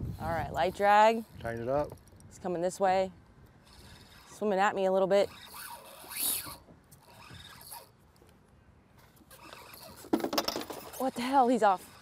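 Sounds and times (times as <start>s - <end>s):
fishing reel rasping: 3.6s - 8.0s, 9.2s - 10.1s, 10.7s - 12.0s
scratchy reel sounds: 3.6s - 8.0s, 9.1s - 12.0s.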